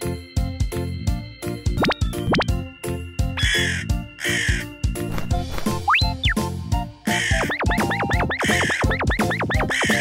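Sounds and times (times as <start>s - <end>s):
background music with steady beat: 0.0s - 10.0s
crow cawing: 3.4s - 4.8s, 7.1s - 7.6s.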